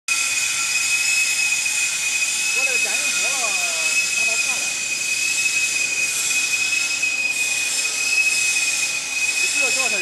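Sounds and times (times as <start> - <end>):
factory machinery whine: 0.1 - 10.0.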